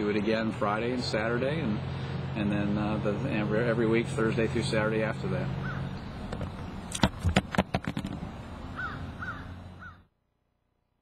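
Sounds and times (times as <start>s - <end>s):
outdoor background noise: 0.0s - 11.0s
bird calling: 5.5s - 6.9s, 8.7s - 10.1s.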